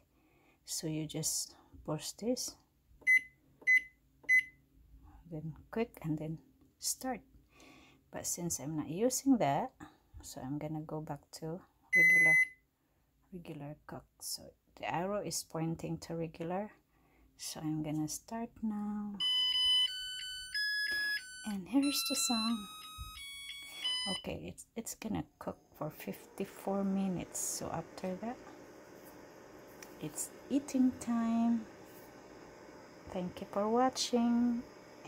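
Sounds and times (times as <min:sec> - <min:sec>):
rice cooker beeping: 0:03.0 - 0:04.6, 0:11.9 - 0:12.6, 0:19.2 - 0:24.3, 0:25.9 - 0:35.0.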